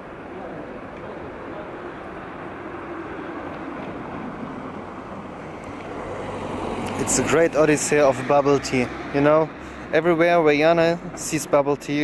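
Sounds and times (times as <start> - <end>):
road traffic hum: 0.0 - 12.0.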